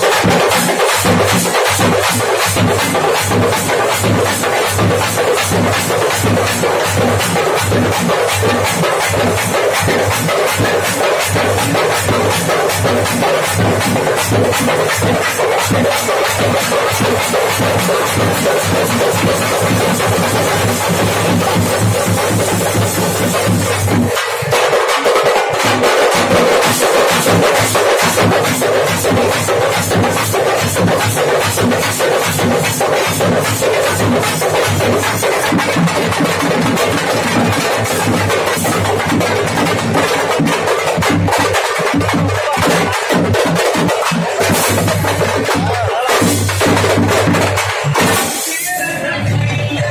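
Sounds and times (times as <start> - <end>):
barrel drums beaten with sticks: 0.0 - 48.8
hand cymbals: 0.0 - 49.9.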